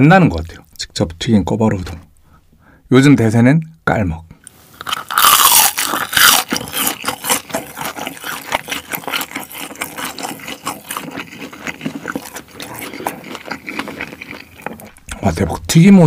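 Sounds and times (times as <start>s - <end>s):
noodle slurping: 4.7s - 15.2s
wet chewing and mouth clicks: 4.7s - 15.4s.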